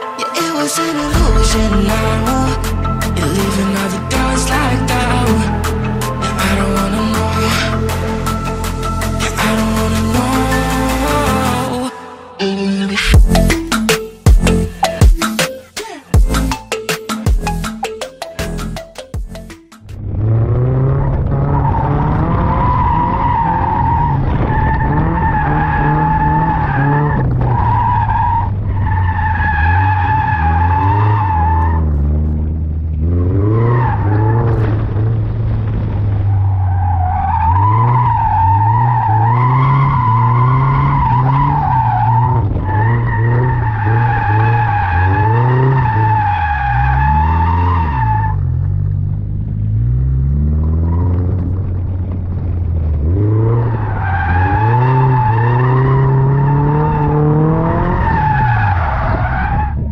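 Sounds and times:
car engine revving: 1.0s - 11.8s, 19.4s - 59.9s.

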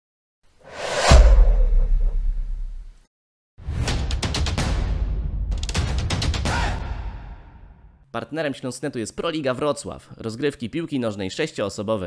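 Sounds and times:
whoosh: 0.6s - 3.0s
low rumble: 0.7s - 3.0s
deep boom: 0.9s - 3.0s.

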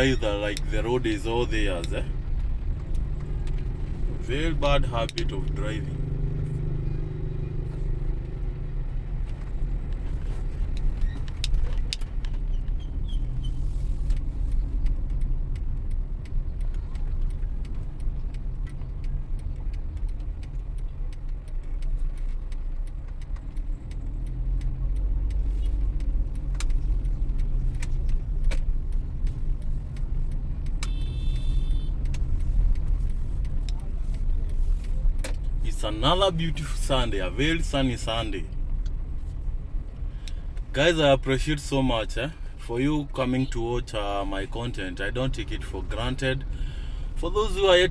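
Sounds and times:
car engine and road noise: 0.0s - 47.9s
small clicks and rattles: 9.1s - 40.7s.

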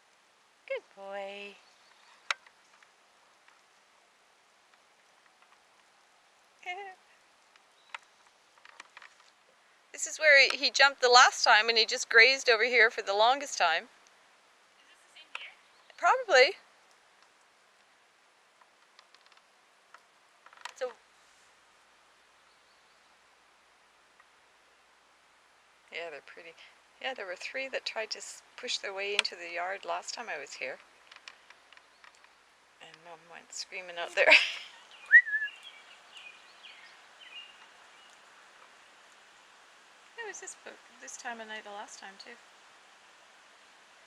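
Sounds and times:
faint outdoor hiss: 0.0s - 44.0s
faint ticks: 1.6s - 14.2s, 14.8s - 16.2s, 16.8s - 21.0s, 27.8s - 33.6s.

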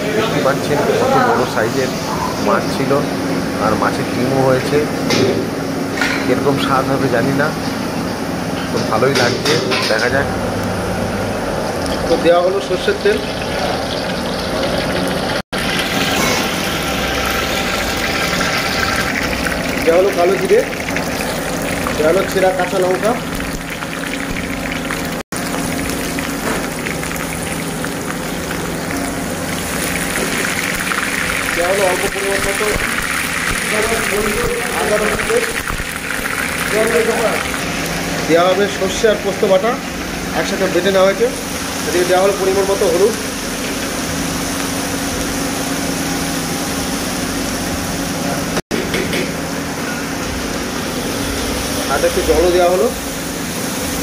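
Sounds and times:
food sizzling in hot oil: 11.3s - 48.1s.

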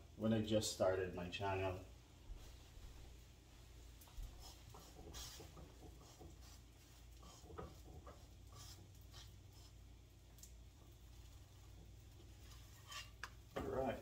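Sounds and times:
spatula scraping frying pan: 4.4s - 9.8s, 11.7s - 13.4s.

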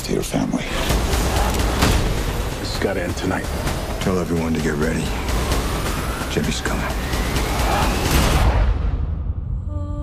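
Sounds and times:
loud rush of noise: 0.7s - 9.1s
deep rumble: 0.7s - 10.0s.

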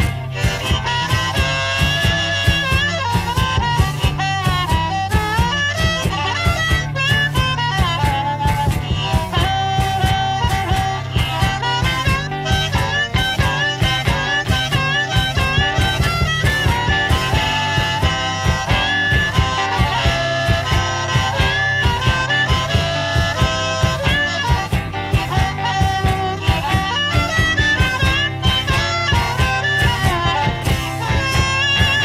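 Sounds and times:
guitar: 0.0s - 32.0s
harmonica playing blues: 0.0s - 32.0s
steady beat: 0.0s - 32.0s.

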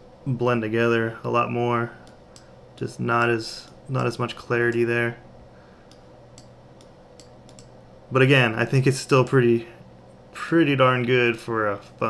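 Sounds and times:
low room hum: 0.0s - 12.0s
computer mouse clicks: 5.9s - 7.8s.

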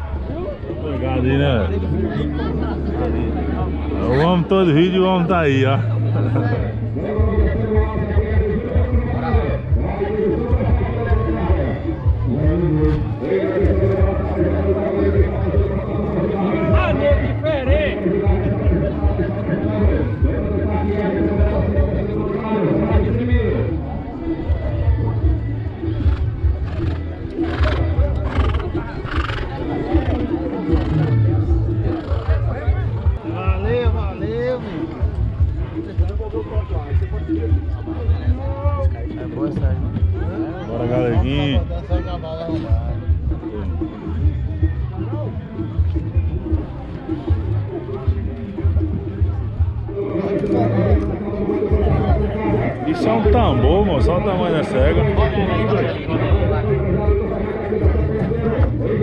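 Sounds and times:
crowd chatter: 0.0s - 59.0s
music: 0.0s - 59.0s
horse whinnying: 26.1s - 32.5s.

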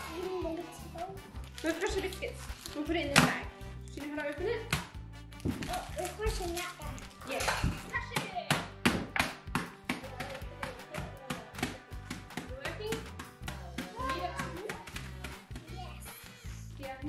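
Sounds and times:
background music: 0.0s - 17.0s
hands crushing biscuits in plastic bag: 4.3s - 7.7s.

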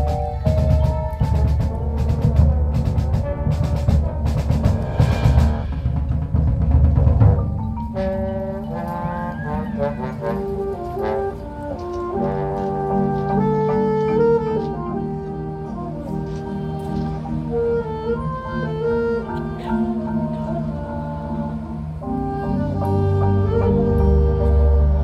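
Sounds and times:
low brass: 0.0s - 25.0s
marching band playing: 0.0s - 25.0s
winds playing held notes: 0.0s - 25.0s
loud percussion hits: 1.4s - 8.0s.

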